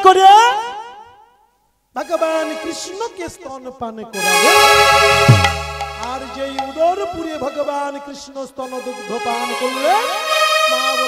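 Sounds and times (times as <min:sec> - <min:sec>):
man's amplified voice: 0:02.0 - 0:11.0.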